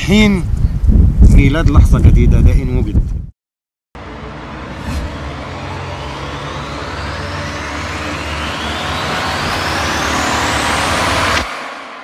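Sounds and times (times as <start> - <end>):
low rumble: 4.0 - 12.0
rising whoosh: 4.0 - 12.0.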